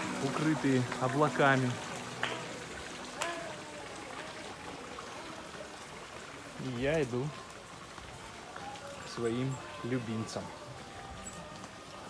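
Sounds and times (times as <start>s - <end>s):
fountain water splashing: 0.0s - 12.0s.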